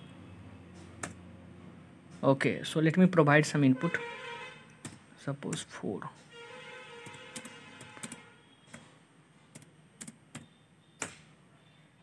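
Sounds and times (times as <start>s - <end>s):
computer keyboard keystrokes: 7.0s - 8.9s.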